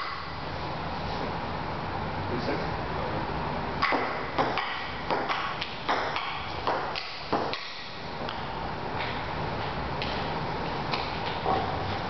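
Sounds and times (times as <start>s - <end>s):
table tennis ball hits: 3.8s - 8.0s.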